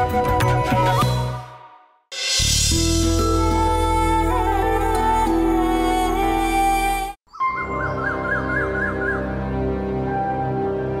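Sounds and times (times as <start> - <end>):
sustained held chords music: 7.6 - 11.0.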